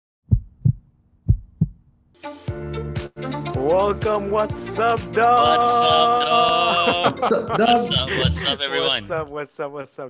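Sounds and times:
heartbeat thumps: 0.2 - 1.9, 8.0 - 8.6.

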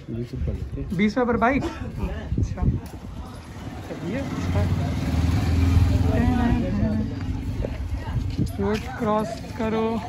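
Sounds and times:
motorcycle engine passing by: 3.5 - 8.1.

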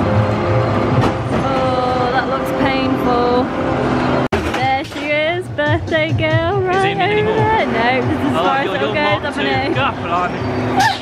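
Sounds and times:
background music: 0.0 - 10.8
roller coaster rumbling on steel track: 0.0 - 11.0.

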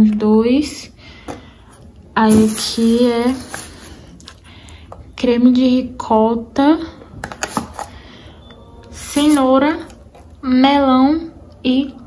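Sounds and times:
groceries set down on table: 2.3 - 4.4.

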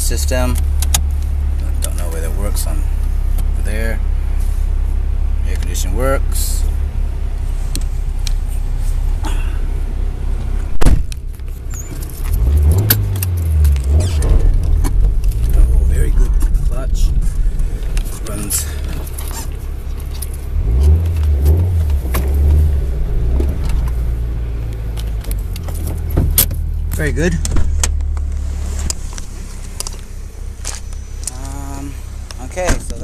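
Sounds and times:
car engine drone from cabin: 0.0 - 33.0.

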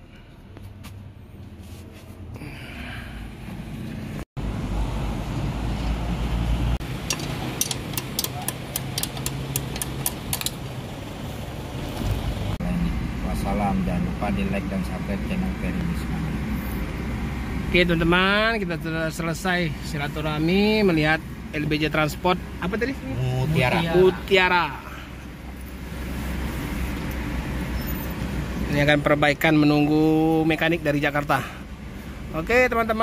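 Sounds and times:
car engine rumble: 0.0 - 33.0
tyres on road: 0.0 - 33.0
sharp clicks: 7.0 - 10.6.

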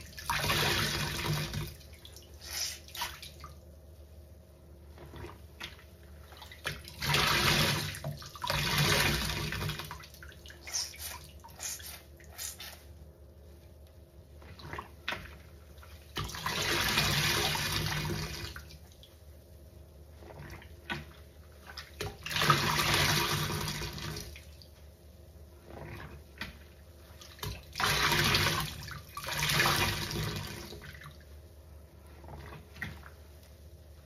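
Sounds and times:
sponge squelching in soapy water: 0.0 - 3.5, 4.6 - 19.3, 19.9 - 34.0.

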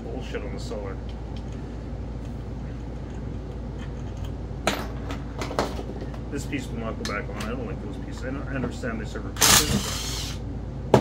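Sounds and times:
furnace humming: 0.0 - 11.0.

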